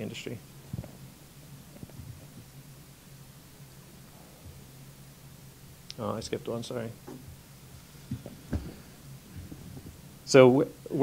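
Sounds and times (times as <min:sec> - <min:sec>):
low electrical hum: 0:00.0 - 0:11.0
soft low thumps: 0:00.6 - 0:03.0, 0:03.7 - 0:04.8, 0:07.0 - 0:10.3.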